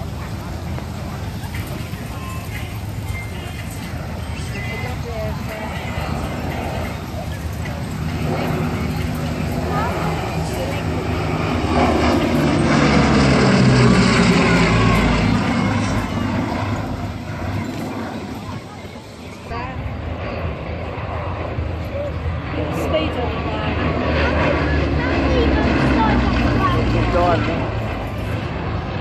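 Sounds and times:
propeller aircraft engines passing: 0.0s - 29.0s.

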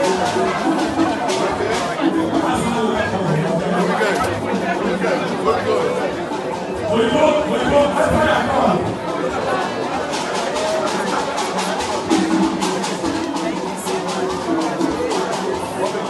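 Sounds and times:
crowd chatter: 0.0s - 16.0s
percussive music with held tones: 0.0s - 16.0s.

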